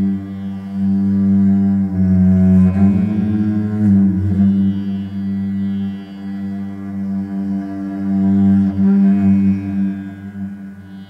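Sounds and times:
cello bowed in sustained notes: 0.0s - 11.0s
low drone: 0.0s - 11.0s.

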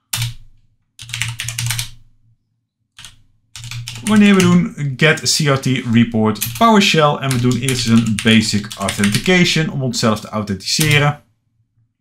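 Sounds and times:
computer keyboard typing: 0.1s - 0.4s, 1.0s - 2.0s, 3.0s - 4.7s, 5.5s - 10.2s, 10.8s - 11.1s.

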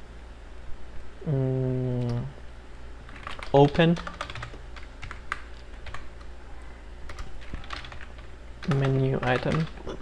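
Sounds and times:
computer keyboard typing: 3.1s - 6.2s, 7.0s - 9.8s.

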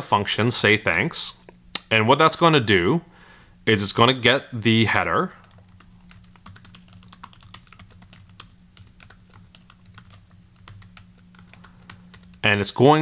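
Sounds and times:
faint low hum: 0.0s - 13.0s
computer keyboard typing: 5.4s - 12.5s.

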